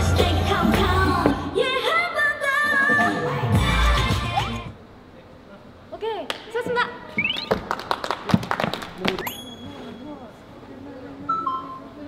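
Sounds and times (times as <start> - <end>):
people clapping: 7.3 - 9.3.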